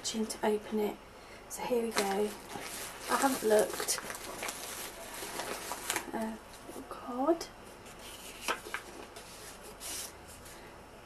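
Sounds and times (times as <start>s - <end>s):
paper envelope crinkling: 1.9s - 6.8s, 7.8s - 10.1s.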